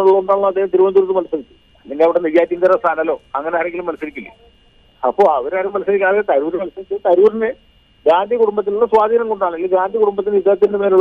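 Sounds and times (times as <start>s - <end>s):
person talking: 0.0s - 11.0s.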